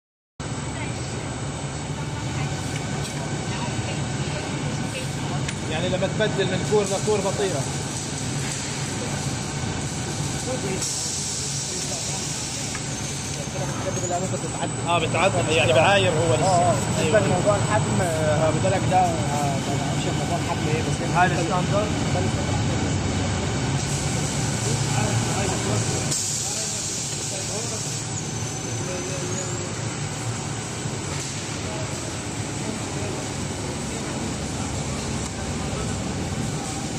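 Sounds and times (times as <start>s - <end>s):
machine running with high whine: 0.4s - 36.9s.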